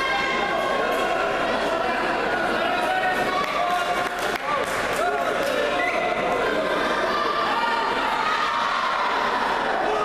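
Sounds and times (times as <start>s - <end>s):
voices shouting in hall: 4.9s - 10.0s.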